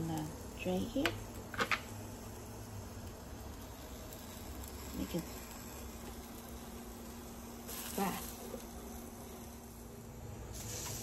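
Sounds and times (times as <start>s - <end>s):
sausages sizzling: 0.0s - 11.0s.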